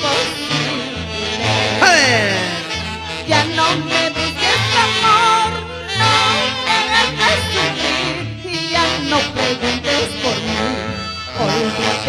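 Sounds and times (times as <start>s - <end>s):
saxophones playing vibrato melody: 0.0s - 12.0s
stepping bass line: 1.8s - 3.1s.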